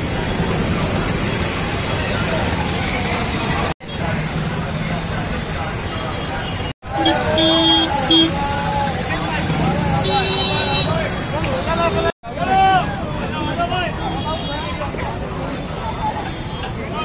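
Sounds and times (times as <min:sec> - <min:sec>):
crowd chatter: 0:00.0 - 0:17.0
vehicle horns honking: 0:06.0 - 0:08.4, 0:10.0 - 0:11.0.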